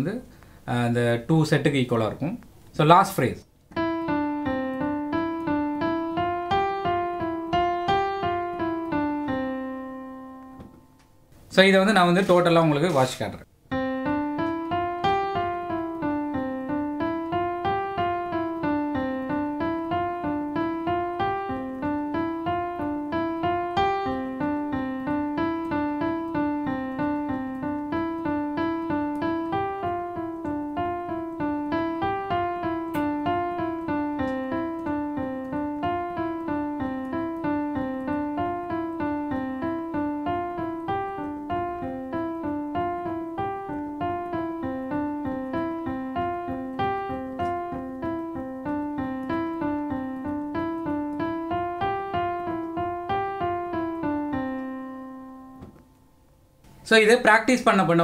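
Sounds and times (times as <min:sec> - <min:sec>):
digital piano exercise: 0:00.0 - 0:58.0.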